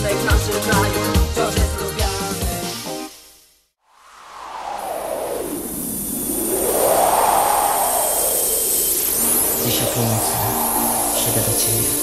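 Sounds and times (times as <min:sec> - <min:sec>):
synthesizer noise sweep: 0:04.0 - 0:12.0
bright gliding synth notes: 0:07.9 - 0:12.0.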